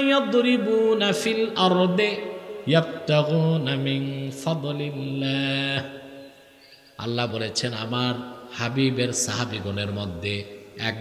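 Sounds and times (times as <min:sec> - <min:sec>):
man chanting into a microphone: 0:00.0 - 0:06.2, 0:07.0 - 0:11.0.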